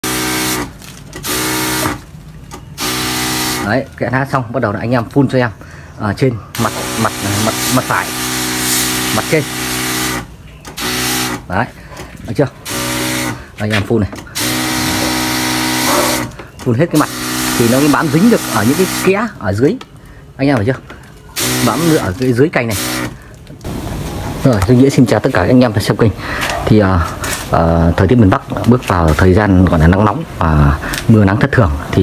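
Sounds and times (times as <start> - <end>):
powered sprayer motor hum: 6.6 - 11.4, 14.4 - 16.3, 17.0 - 19.1
liquid spray hissing: 21.4 - 24.4.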